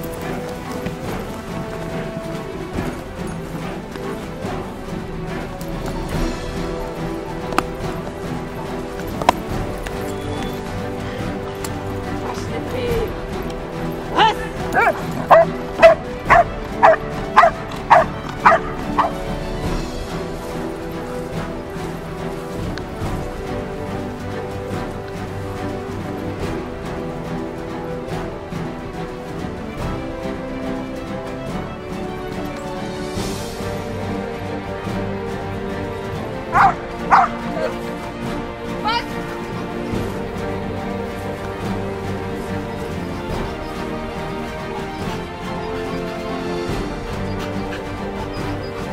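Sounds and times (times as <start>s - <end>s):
background music: 0.0s - 48.9s
dog barking: 14.6s - 19.2s, 36.5s - 37.8s.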